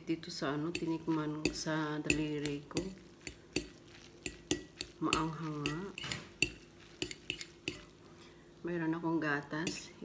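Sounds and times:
fork clinking against ceramic bowl: 0.7 - 7.9.

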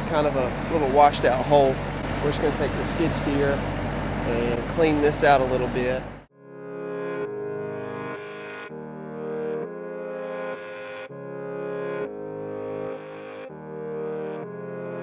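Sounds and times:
sustained synthesizer chords: 0.0 - 15.0.

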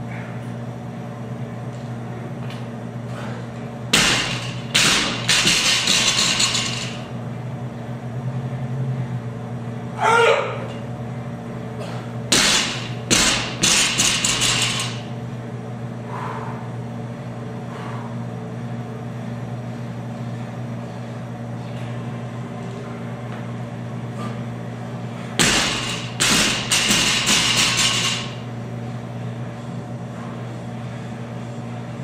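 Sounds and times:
bar and plates rattling: 4.0 - 7.1, 12.3 - 15.1, 25.4 - 28.4
barbell crashing on floor: 4.0 - 7.1, 12.3 - 15.1, 25.4 - 28.4.

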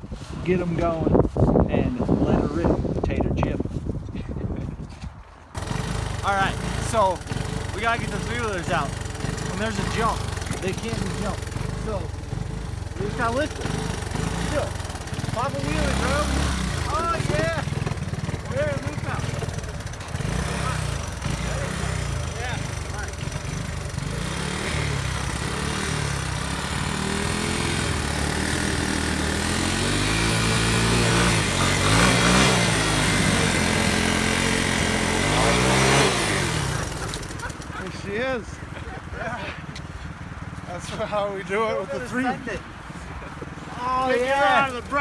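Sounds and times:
engine revving hard: 5.6 - 38.3.

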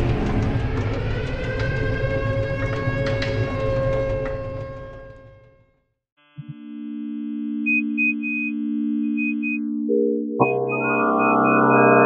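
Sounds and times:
low electronic drone: 9.7 - 12.0
short high beeps: 10.4 - 12.0.

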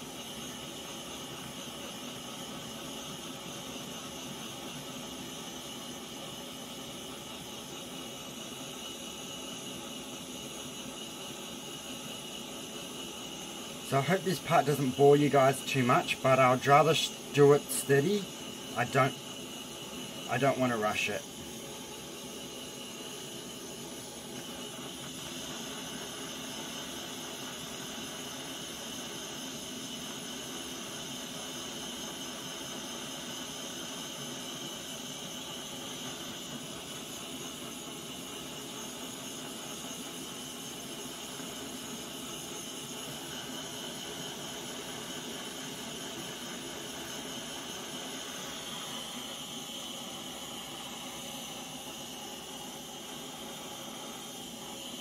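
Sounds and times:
torch flame hissing: 0.0 - 55.0.

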